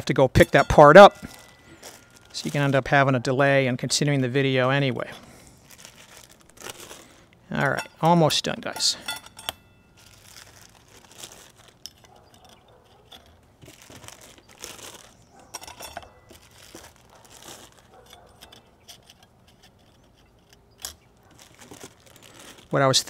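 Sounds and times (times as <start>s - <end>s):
metal plates clinking: 0.0s - 2.9s, 7.6s - 10.1s, 11.8s - 20.0s
plastic bags crinkling: 0.0s - 3.0s, 4.0s - 7.8s, 9.9s - 23.0s.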